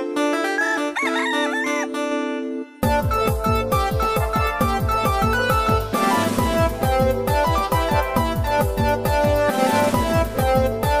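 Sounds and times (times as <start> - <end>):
background music: 0.0 - 11.0
rooster crowing: 0.4 - 2.0.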